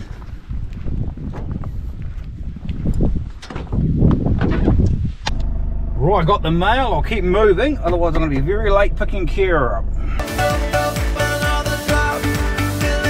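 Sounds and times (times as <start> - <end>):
low hum of van: 0.0 - 11.0.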